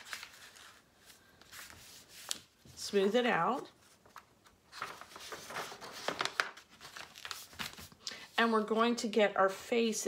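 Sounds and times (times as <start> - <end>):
paper rustling: 0.0 - 8.0.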